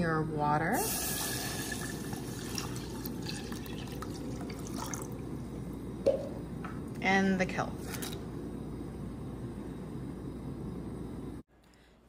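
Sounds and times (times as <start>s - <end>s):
water pouring into saucepan: 0.8s - 5.4s.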